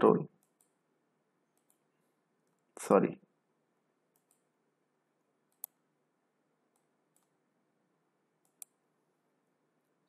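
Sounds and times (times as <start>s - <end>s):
computer mouse clicks: 0.4s - 0.8s, 1.6s - 1.8s, 4.1s - 4.5s, 5.5s - 5.8s, 6.7s - 7.4s, 8.4s - 8.8s.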